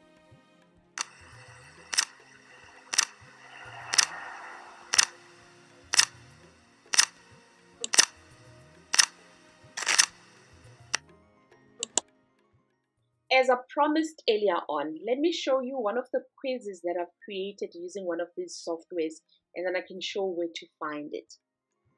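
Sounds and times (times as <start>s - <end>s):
faint background music: 0.0s - 21.9s
timer ticking: 1.0s - 7.2s, 7.8s - 8.2s, 11.8s - 12.0s.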